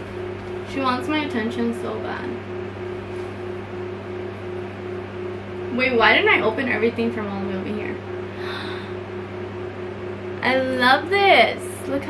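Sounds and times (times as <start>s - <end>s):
electric fan running: 0.0s - 12.0s.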